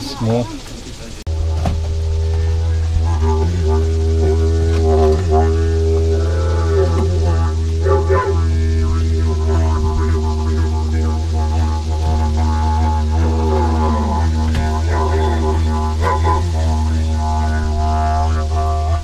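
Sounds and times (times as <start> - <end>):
didgeridoo drone: 0.0 - 19.0.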